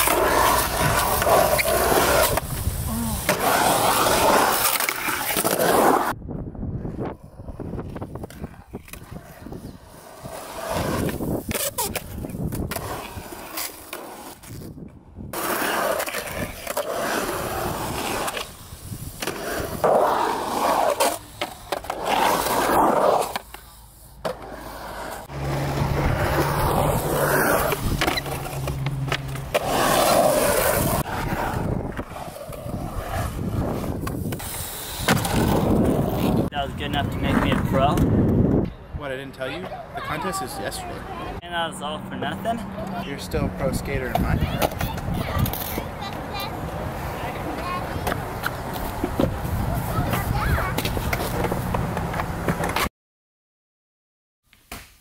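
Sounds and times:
skateboard wheels rolling on concrete: 0:00.0 - 0:52.9.

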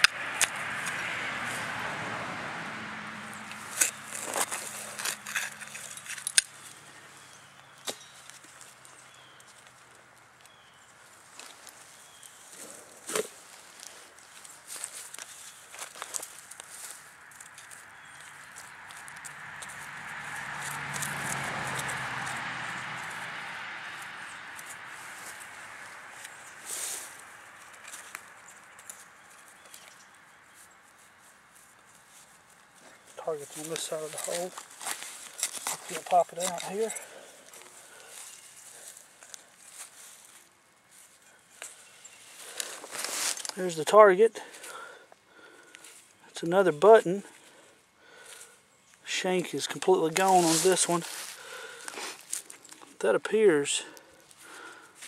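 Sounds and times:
digging tool scraping soil: 0:03.6 - 0:06.6, 0:33.2 - 0:38.3, 0:49.5 - 0:51.3.

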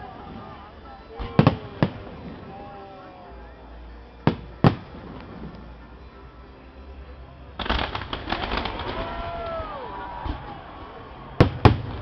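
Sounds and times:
fireworks crackling: 0:00.0 - 0:06.0, 0:07.5 - 0:12.0.

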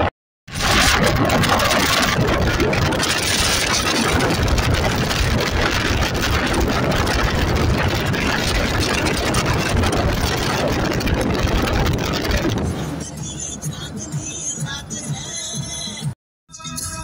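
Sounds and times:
tyre and wind noise: 0:00.0 - 0:13.0
car engine: 0:00.0 - 0:16.1.

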